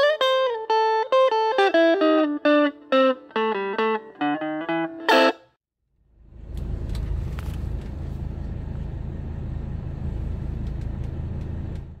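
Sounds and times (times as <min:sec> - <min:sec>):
faint engine ticks: 0:10.4 - 0:12.0.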